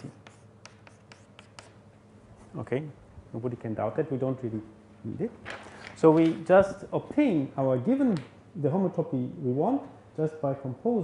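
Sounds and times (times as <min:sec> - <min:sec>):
writing taps and scratches on board: 0:00.0 - 0:01.8.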